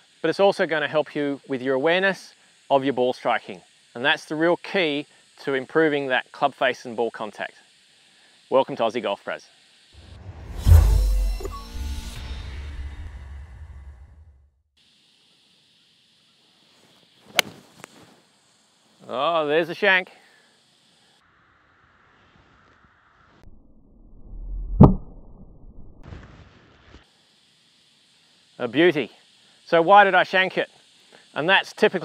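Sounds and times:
low rumble: 10.0 - 11.5, 23.4 - 26.0
golf club swish: 17.3 - 17.6.

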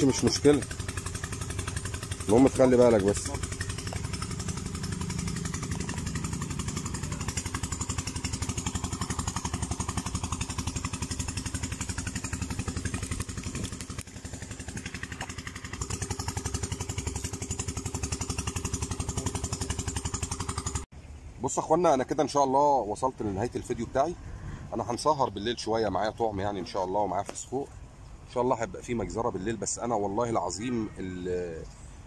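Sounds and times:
small engine idling: 0.0 - 21.3, 22.6 - 30.6.

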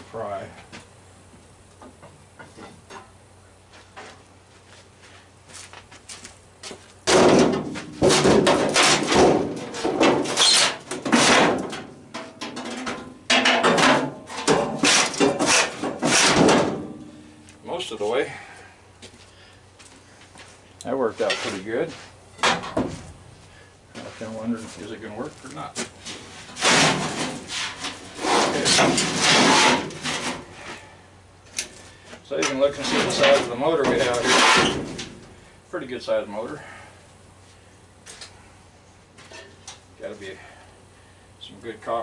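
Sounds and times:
metal scraping and clanking: 7.1 - 17.3, 26.0 - 30.8, 32.4 - 35.2.

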